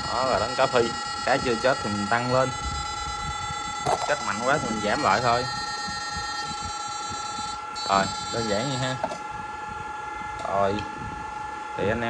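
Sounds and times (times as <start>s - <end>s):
high buzzing whine of inverter: 0.0s - 12.0s.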